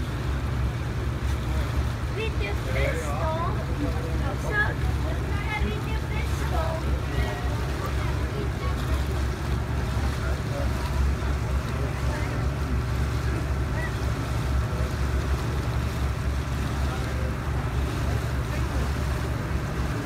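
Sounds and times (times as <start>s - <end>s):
boat engine low rumble: 0.0s - 20.0s
water washing: 0.0s - 20.0s.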